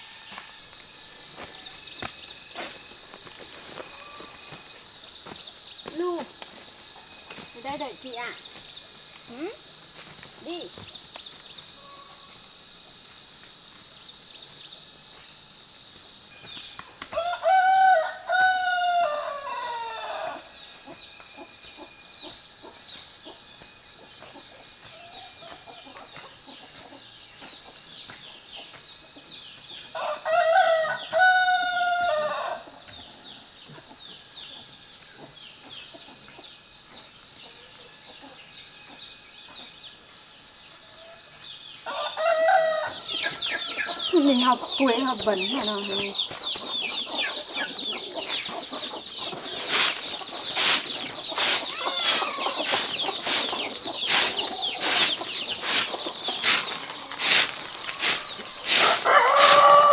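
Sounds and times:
high insect buzz: 0.0 - 59.9
rooster crowing: 3.8 - 4.6, 17.1 - 20.6, 29.9 - 32.8, 41.0 - 44.2, 51.4 - 53.5, 54.1 - 59.9
chickens calling: 41.8 - 59.9.

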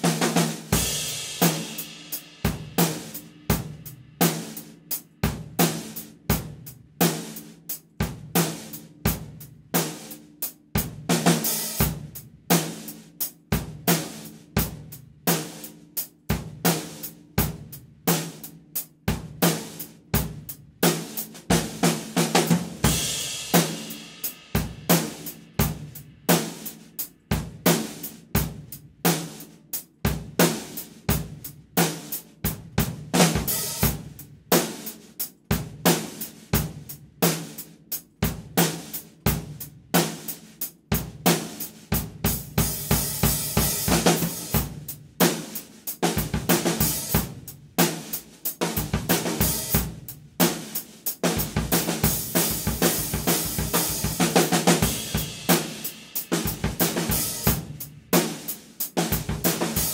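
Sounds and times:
drum kit groove: 0.0 - 59.9.

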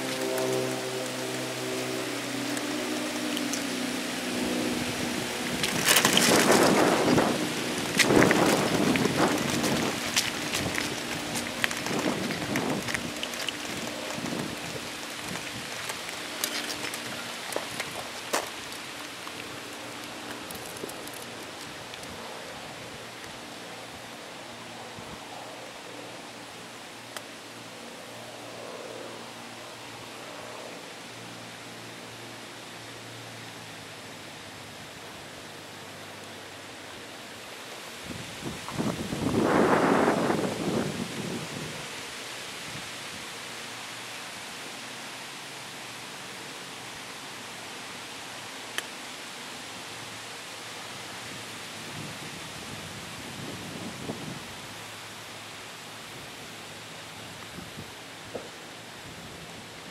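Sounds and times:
rushing noise: 0.0 - 22.4
outdoor noise: 0.0 - 59.9
rustling on camera microphone: 4.8 - 22.4.

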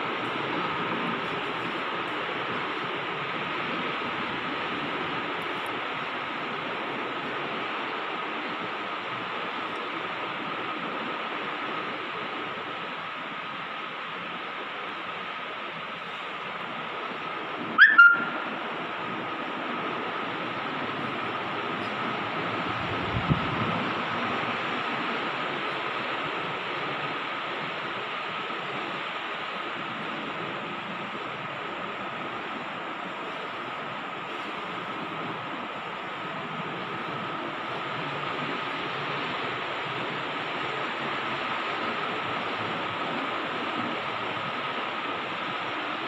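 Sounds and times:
faint constant whine: 0.0 - 46.0
steady background hiss: 0.0 - 46.0
sharp squeak: 17.8 - 18.3.

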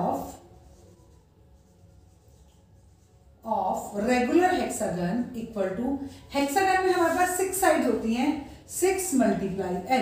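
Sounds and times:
marker writing on whiteboard: 0.0 - 3.7
low room hum: 0.0 - 9.8.

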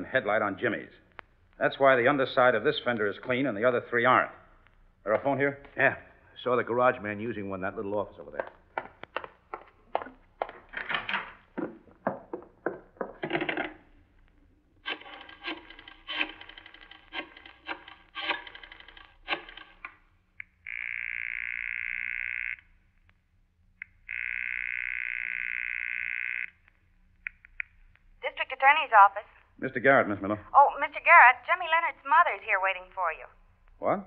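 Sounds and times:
rotary dial clicking: 14.8 - 20.0
telephone buzzing rings: 20.6 - 22.7, 24.0 - 26.6.

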